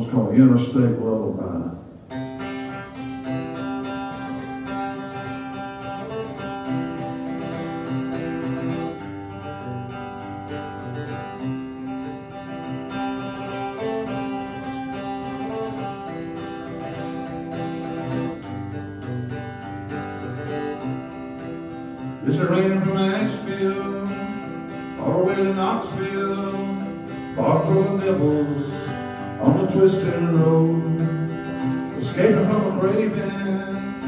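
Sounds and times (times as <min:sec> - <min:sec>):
acoustic guitar strummed and picked: 0:00.9 - 0:34.0.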